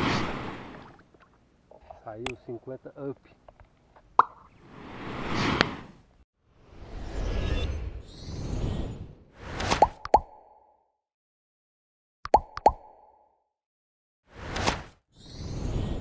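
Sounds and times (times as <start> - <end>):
whooshes: 4.5 - 10.0
quick plopping pops: 9.8 - 10.5, 12.3 - 13.1.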